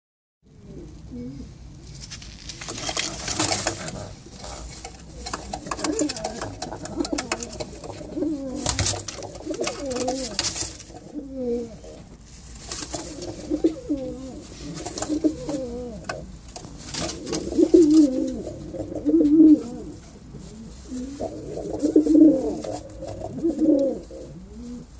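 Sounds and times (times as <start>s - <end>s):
pigeons cooing: 0.5s - 1.7s, 2.9s - 12.2s, 12.9s - 24.9s
brief rustling: 1.8s - 8.0s.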